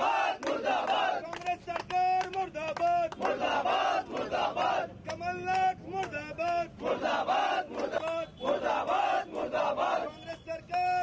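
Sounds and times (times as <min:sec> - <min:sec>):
men shouting slogans together: 0:00.0 - 0:01.4, 0:02.6 - 0:11.0.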